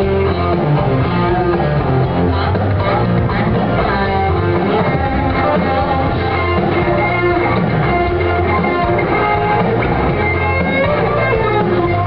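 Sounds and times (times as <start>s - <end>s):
bass guitar: 0.0s - 12.0s
electric guitar: 0.0s - 12.0s.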